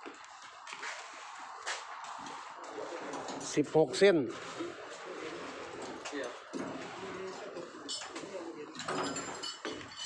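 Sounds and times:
outdoor noise: 0.0s - 10.0s.

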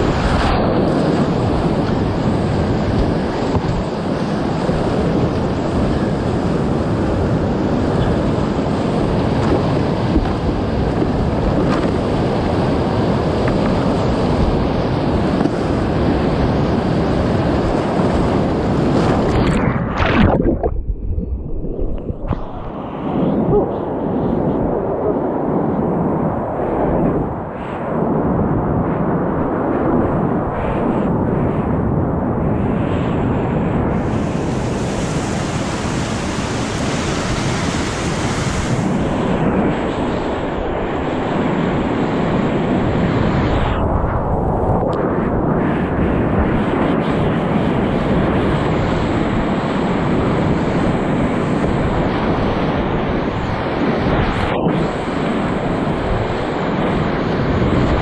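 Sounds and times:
water splashing close by: 19.0s - 22.7s.

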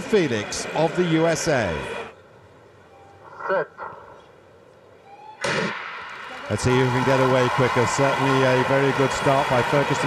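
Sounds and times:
crowd noise: 0.0s - 10.0s
starting gun crack: 5.4s - 6.4s.

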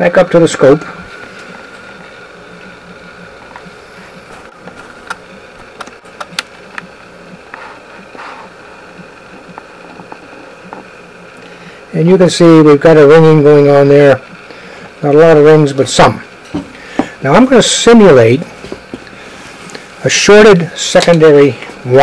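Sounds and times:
electrical hum and buzz: 0.0s - 22.0s.

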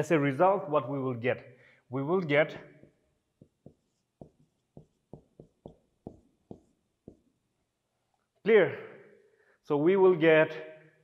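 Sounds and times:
marker pen writing on whiteboard: 2.7s - 8.4s.

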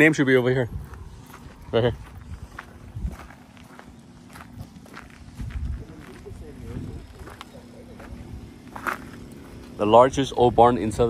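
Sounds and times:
footsteps on dry grass and dirt: 0.0s - 10.6s
faint voices: 5.0s - 11.0s.

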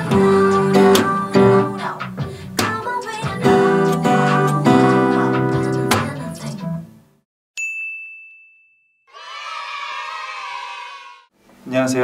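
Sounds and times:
bright ding: 7.6s - 9.0s.

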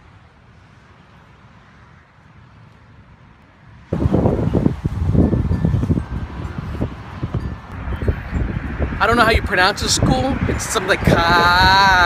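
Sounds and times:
gusting wind on microphone: 2.6s - 12.0s.

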